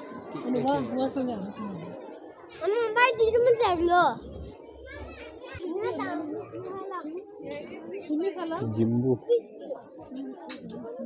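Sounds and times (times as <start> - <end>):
quieter voices: 8.6 - 11.0.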